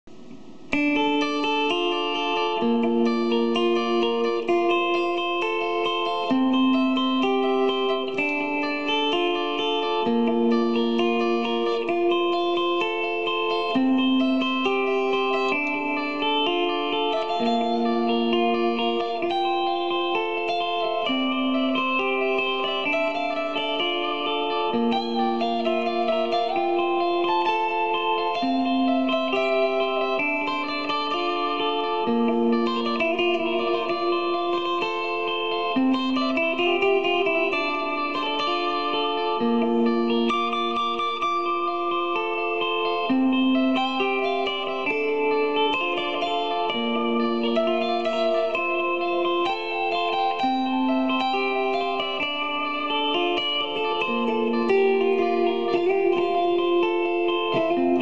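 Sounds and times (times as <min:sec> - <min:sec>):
looped electric guitar melody: 0:00.0 - 0:58.0.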